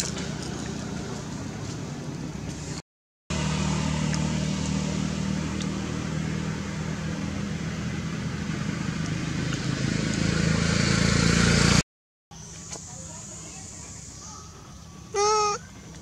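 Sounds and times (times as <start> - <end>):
vehicle engine humming: 0.0 - 11.8.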